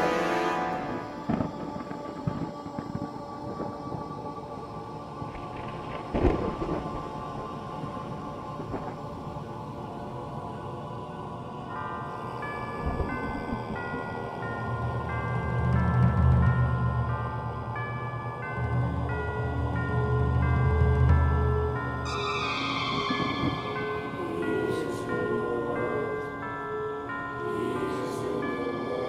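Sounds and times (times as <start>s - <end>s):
dark film score tones: 0.0s - 29.0s.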